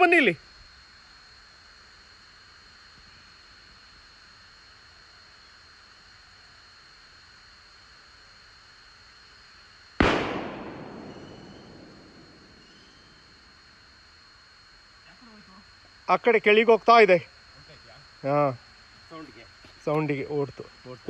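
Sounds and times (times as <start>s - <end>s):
faint steady hiss: 0.0s - 21.0s
loud bang: 10.0s - 13.3s
thin high whine: 10.6s - 14.4s.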